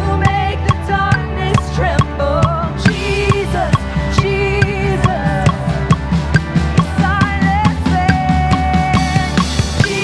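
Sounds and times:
person singing: 0:00.0 - 0:06.0, 0:06.8 - 0:10.0
drum kit beat: 0:00.0 - 0:10.0
keyboard chords: 0:00.0 - 0:10.0.

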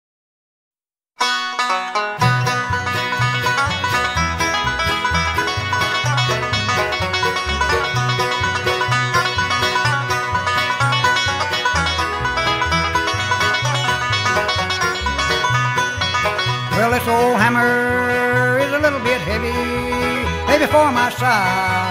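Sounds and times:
bass line: 0:01.2 - 0:21.9
rapid banjo picking: 0:01.2 - 0:21.9.

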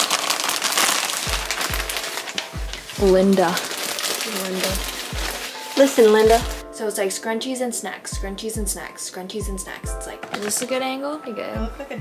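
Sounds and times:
plastic bag crinkling: 0:00.0 - 0:06.6, 0:10.2 - 0:11.0
music with kick-drum beat: 0:01.2 - 0:03.4, 0:04.7 - 0:05.5, 0:06.2 - 0:06.7, 0:08.2 - 0:10.3, 0:11.6 - 0:12.0.

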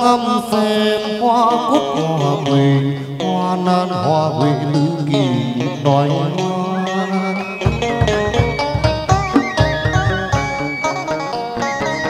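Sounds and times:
person singing with wavering pitch: 0:00.0 - 0:08.5
sustained instrumental accompaniment: 0:02.0 - 0:12.0.

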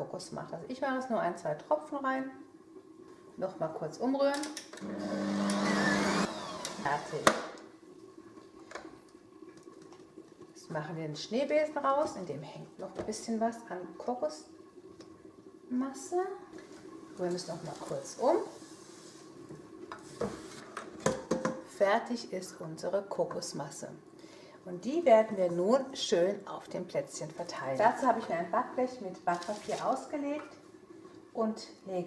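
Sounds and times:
stand mixer motor humming: 0:04.8 - 0:07.1.

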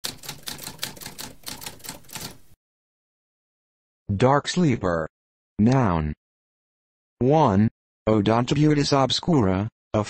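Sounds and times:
typewriter keys clacking: 0:00.0 - 0:02.4.

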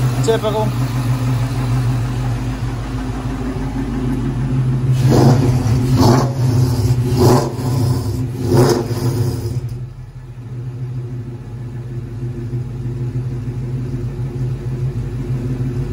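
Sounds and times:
car engine idling: 0:00.0 - 0:15.9
engine revving bursts: 0:04.8 - 0:09.8.

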